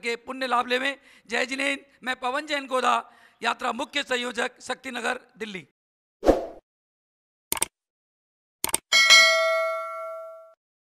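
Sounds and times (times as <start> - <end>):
bright bell ding: 9.0 - 10.6.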